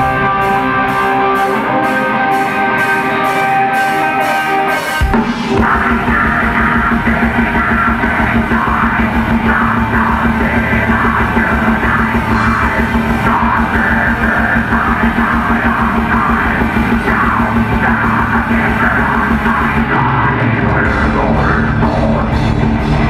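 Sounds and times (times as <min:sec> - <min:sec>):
bass guitar: 0:00.0 - 0:23.0
distorted electric guitars: 0:00.0 - 0:23.0
fast dense drumming: 0:05.0 - 0:23.0.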